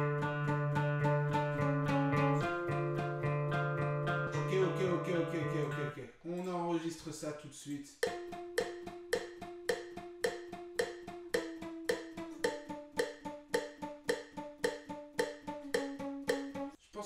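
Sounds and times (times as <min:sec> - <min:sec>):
acoustic guitar arpeggio: 0:00.0 - 0:06.0, 0:08.0 - 0:16.8.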